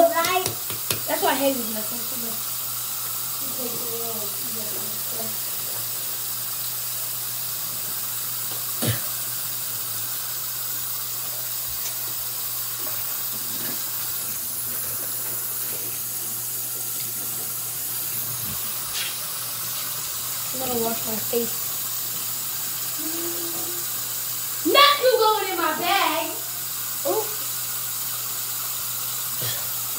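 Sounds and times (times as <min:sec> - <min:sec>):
sink tap running: 0:00.0 - 0:29.9.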